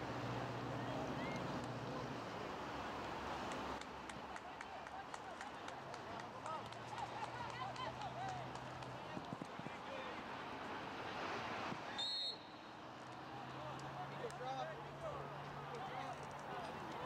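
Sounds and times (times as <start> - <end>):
open-air field noise: 0.0 - 17.0.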